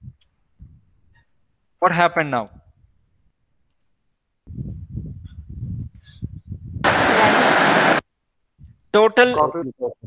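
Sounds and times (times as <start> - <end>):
loud burst of hiss: 6.8 - 8.0.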